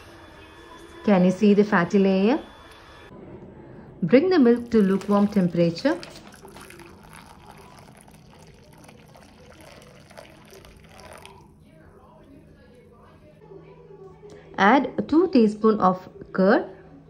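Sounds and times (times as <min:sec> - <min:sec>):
milk trickling into a glass bowl: 0:04.6 - 0:12.4.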